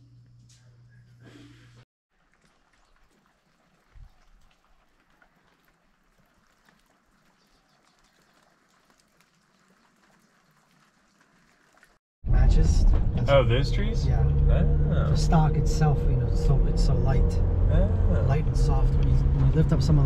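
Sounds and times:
low room hum: 0.0 - 1.8
light rain on foliage: 2.1 - 12.0.

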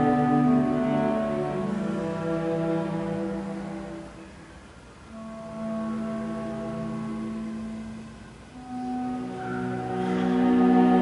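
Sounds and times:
orchestra sustained chord: 0.0 - 11.0.

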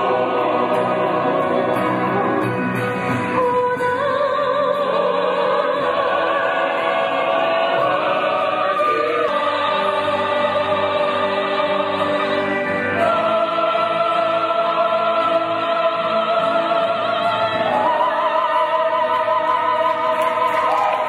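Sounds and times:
mixed choir singing harmony: 0.0 - 21.0.

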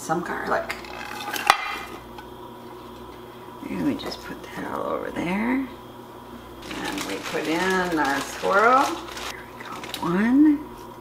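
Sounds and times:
chopped vegetables tumbling into pot: 6.6 - 10.1.

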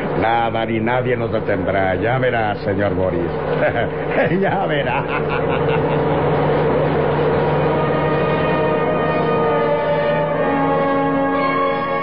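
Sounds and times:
heavy truck engine running: 0.0 - 12.0.

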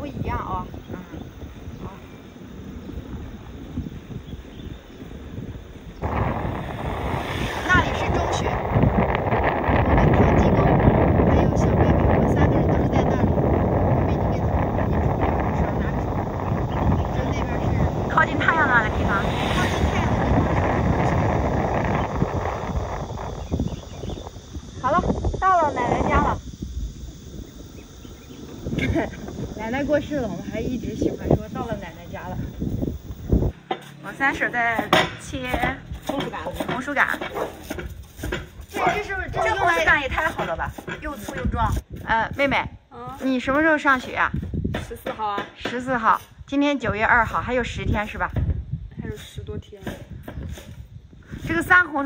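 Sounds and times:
wind buffeting microphone: 0.0 - 52.0
scooter tyre noise: 5.9 - 24.4.

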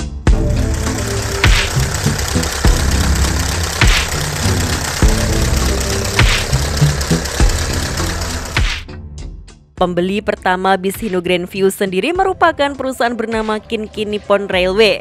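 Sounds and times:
background music with beat: 0.0 - 10.0
diesel engine running: 0.3 - 8.9.

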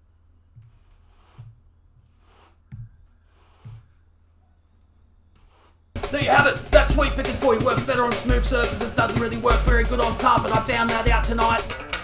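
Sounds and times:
broom brushing across carpet: 0.6 - 3.9, 5.4 - 5.8.

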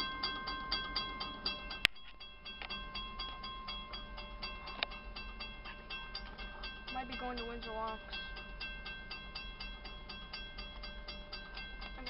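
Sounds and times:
crossing bell ringing: 0.0 - 12.0.

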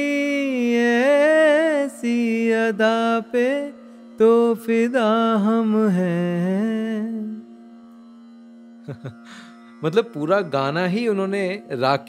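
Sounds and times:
person singing: 0.0 - 7.5.

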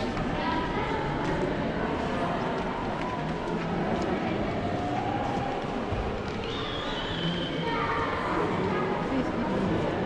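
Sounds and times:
indistinct crowd chatter: 0.0 - 10.0.

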